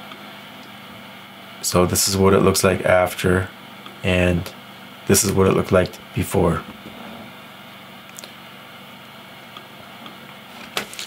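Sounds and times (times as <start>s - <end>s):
faint hum: 0.0s - 11.0s.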